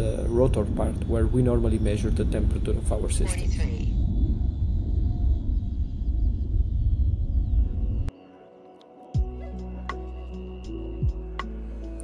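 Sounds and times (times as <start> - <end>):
wind buffeting microphone: 0.0 - 8.1.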